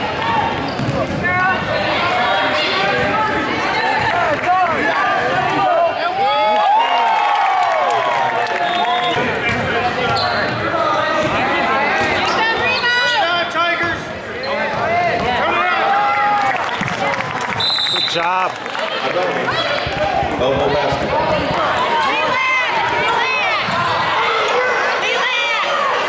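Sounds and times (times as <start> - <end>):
sneakers squeaking on hardwood floor: 0.6 - 1.2, 9.4 - 11.4
referee whistle: 17.6 - 18.3.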